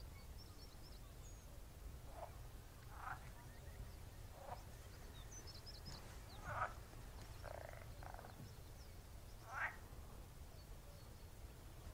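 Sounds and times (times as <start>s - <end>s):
frogs croaking: 2.1s - 3.4s, 6.4s - 8.5s, 9.4s - 9.8s
rattling pulsed frog croak: 2.9s - 3.2s, 6.4s - 6.8s, 7.4s - 8.3s, 9.4s - 9.8s.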